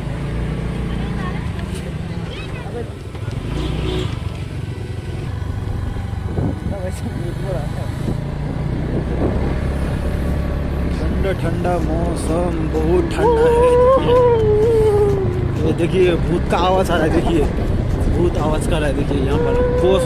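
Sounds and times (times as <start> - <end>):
vehicle engine running: 0.0 - 20.0.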